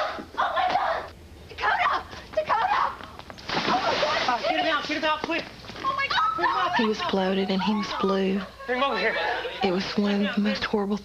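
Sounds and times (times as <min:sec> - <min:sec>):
water splashing: 0:03.4 - 0:05.3.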